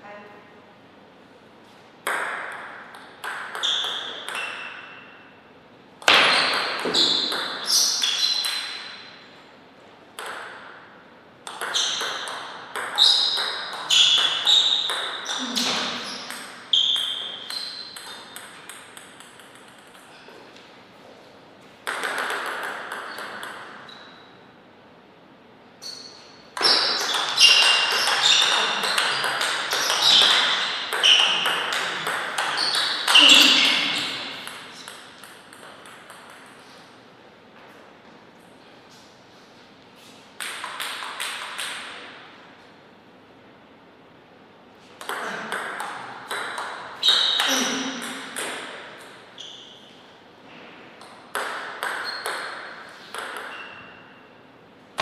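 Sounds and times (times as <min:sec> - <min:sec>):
table tennis ball hits: 0:02.0 - 0:05.2, 0:06.0 - 0:09.2, 0:10.2 - 0:20.2, 0:21.8 - 0:24.3, 0:26.2 - 0:37.0, 0:40.4 - 0:42.2, 0:45.0 - 0:49.2, 0:50.6 - 0:54.0
table tennis ball clicking: 0:11.4 - 0:14.3, 0:16.3 - 0:20.1, 0:21.9 - 0:23.7, 0:34.4 - 0:36.6.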